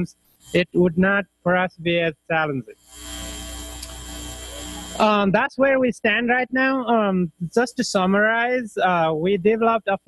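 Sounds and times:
low electrical hum: 0.0 - 10.0
steady hiss: 0.0 - 10.0.

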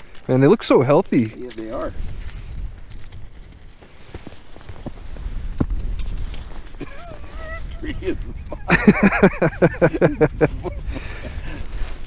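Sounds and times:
camera rubbing against clothing: 1.0 - 12.0.

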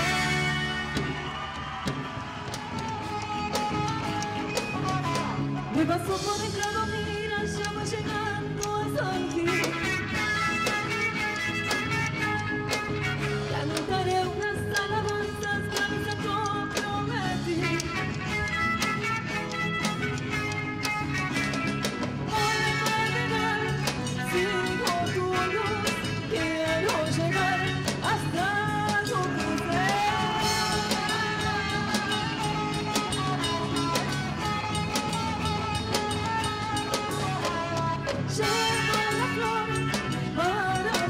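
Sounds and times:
drums steady beat: 0.0 - 41.0
guitars: 0.0 - 41.0
live band playing folk dance music: 0.0 - 41.0.

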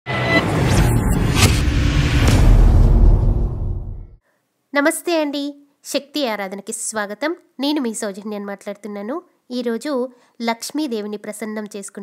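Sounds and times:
low rumble: 0.1 - 4.2
short whooshes: 0.1 - 4.2.

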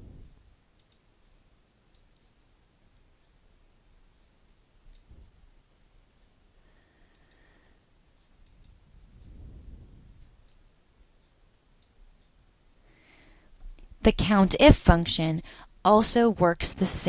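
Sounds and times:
soft low rumble: 0.0 - 0.6, 8.4 - 11.2
computer mouse clicks: 0.8 - 1.0, 7.1 - 7.5, 8.4 - 8.8.

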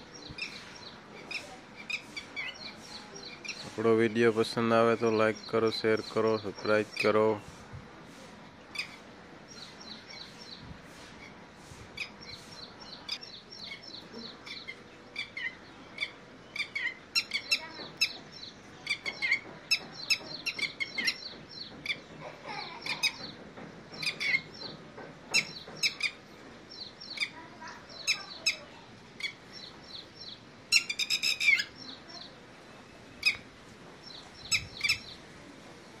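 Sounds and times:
lapwings calling: 0.2 - 7.6, 8.7 - 11.4, 12.0 - 23.4, 24.0 - 24.7, 25.3 - 26.2, 26.8 - 32.3, 33.2 - 33.5, 34.2 - 35.2.

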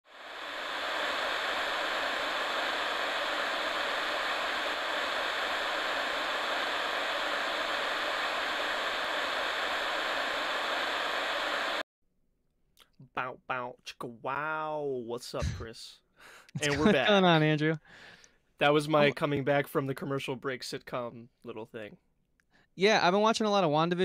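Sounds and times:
static white noise hiss: 0.1 - 11.8.

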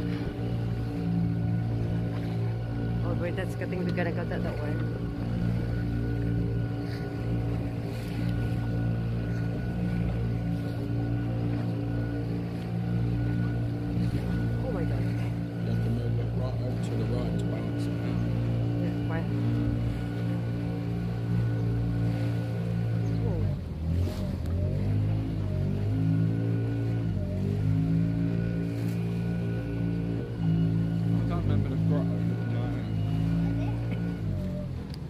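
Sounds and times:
boat engine humming: 0.0 - 35.0.

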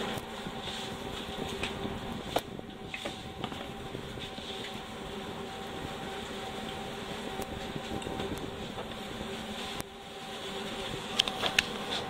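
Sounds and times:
kitchen machinery humming: 0.0 - 12.0.

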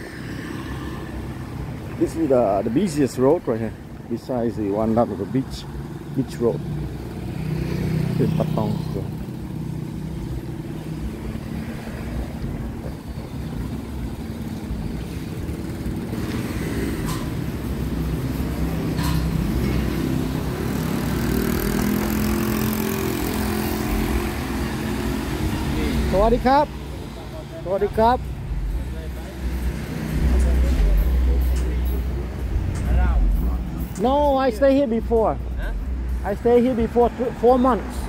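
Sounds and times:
vehicle engines humming: 0.0 - 38.0.

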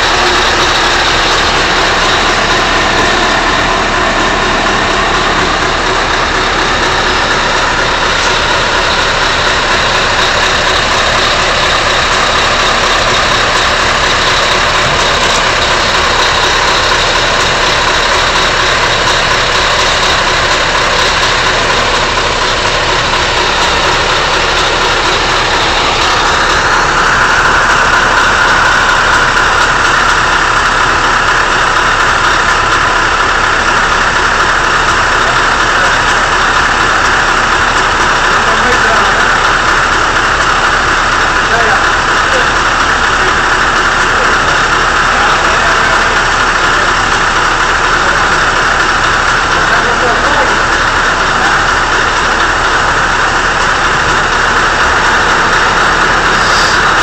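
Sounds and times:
crane whine: 0.0 - 57.0
diesel truck engine running: 0.0 - 57.0.

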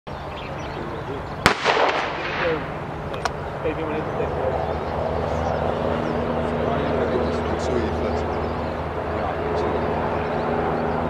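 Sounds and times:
shotgun shot with echo: 1.4 - 2.8.

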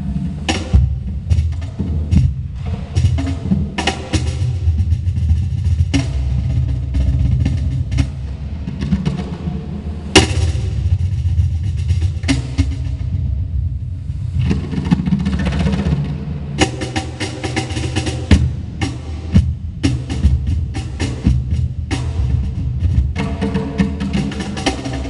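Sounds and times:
cajons played by hand: 0.0 - 9.3, 16.6 - 25.0.

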